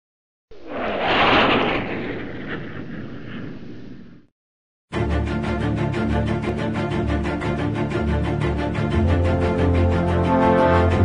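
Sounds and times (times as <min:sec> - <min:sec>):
wind-like whoosh: 0:00.5 - 0:04.3.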